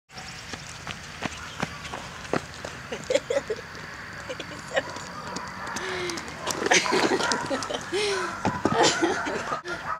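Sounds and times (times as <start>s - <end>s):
outdoor background noise: 0.1s - 9.9s
hoofbeats on asphalt: 0.4s - 8.8s.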